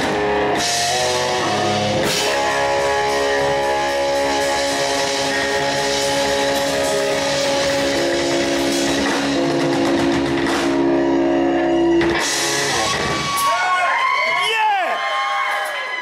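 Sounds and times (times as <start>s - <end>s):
rock band sustained chord: 0.0s - 13.3s.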